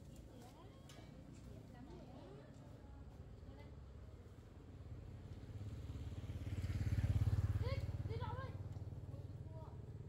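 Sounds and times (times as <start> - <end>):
motorcycle engine passing by: 5.4 - 10.0.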